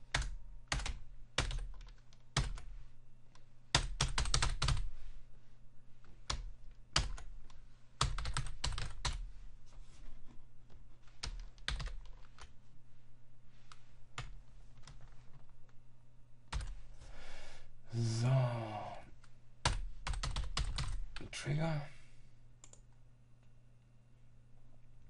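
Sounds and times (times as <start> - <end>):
typing on computer keyboard: 0.1 - 2.7, 3.7 - 4.9, 6.3 - 7.4, 8.0 - 9.2, 11.1 - 12.5, 19.6 - 21.0
short wordless vocal sounds: 17.8 - 19.2.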